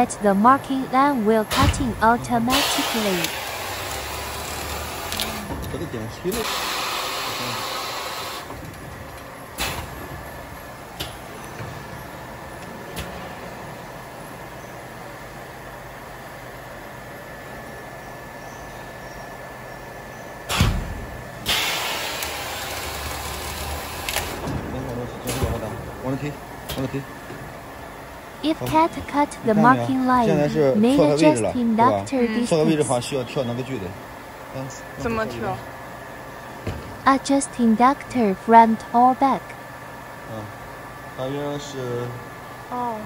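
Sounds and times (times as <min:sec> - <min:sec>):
faint machine whine: 0:00.0 - 0:43.0
cutting machine humming: 0:01.5 - 0:08.5, 0:28.4 - 0:34.0.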